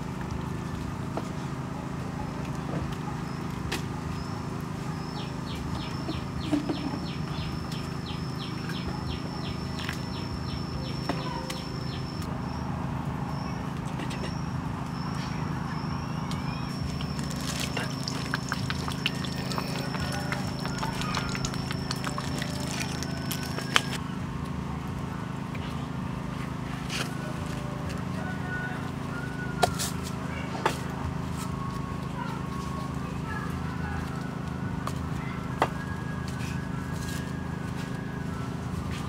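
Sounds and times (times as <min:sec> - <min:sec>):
soup bubbling at a boil: 0:16.7 - 0:24.0.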